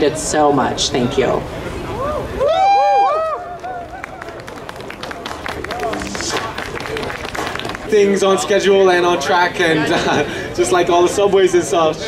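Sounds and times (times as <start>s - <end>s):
murmur of crowd talking: 0.0s - 12.0s.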